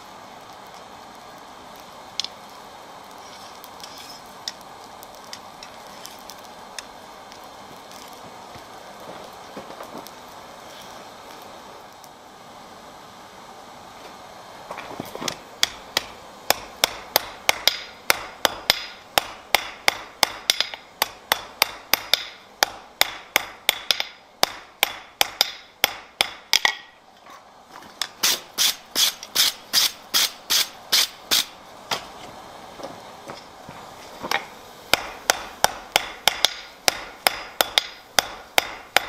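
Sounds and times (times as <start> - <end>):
hammer striking iron on anvil: 15.6 - 26.9, 34.9 - 39.0.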